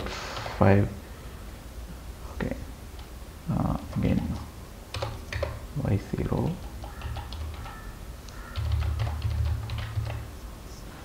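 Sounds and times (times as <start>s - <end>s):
low steady hum: 0.0s - 11.0s
keyboard key clicks: 5.0s - 5.6s.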